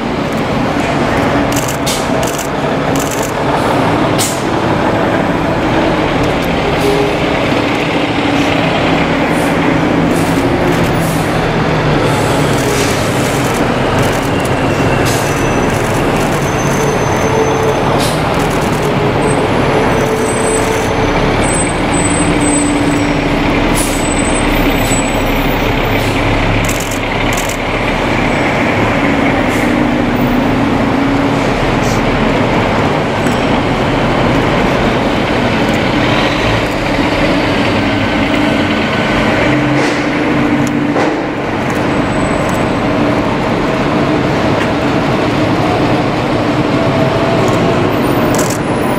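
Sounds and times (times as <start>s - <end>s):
fire engines passing: 0.0s - 48.9s
air brakes hissing: 12.0s - 13.3s, 23.7s - 25.3s.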